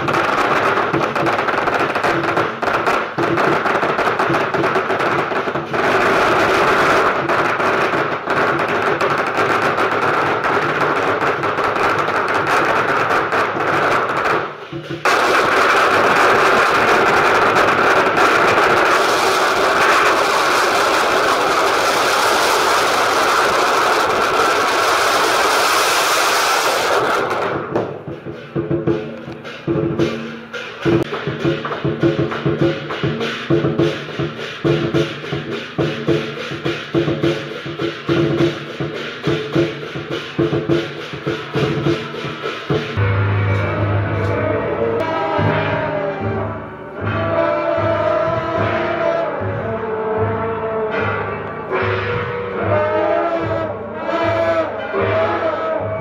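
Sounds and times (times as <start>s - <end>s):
firecrackers crackling: 0.0s - 50.0s.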